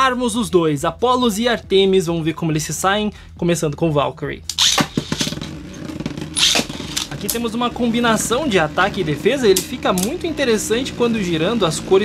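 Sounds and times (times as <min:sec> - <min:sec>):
launcher ripping: 0:04.5 - 0:10.8
spinning top whirring: 0:04.5 - 0:12.0
spinning top landing clicks: 0:09.5 - 0:10.3.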